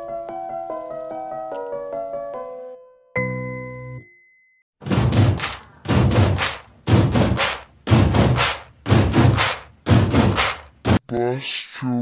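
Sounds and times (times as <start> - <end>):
deep impact thuds with hiss: 4.8 - 11.0.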